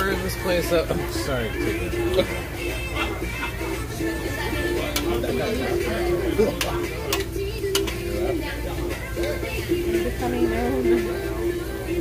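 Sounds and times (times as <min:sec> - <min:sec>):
background music: 0:00.0 - 0:12.0
voices: 0:00.0 - 0:12.0
metal tongs clicking on grill: 0:04.9 - 0:05.2, 0:06.5 - 0:08.1.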